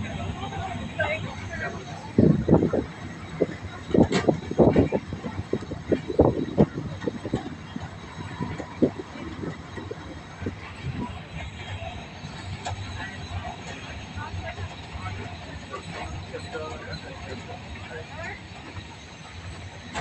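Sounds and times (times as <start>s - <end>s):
narrow-gauge train moving: 0.0s - 20.0s.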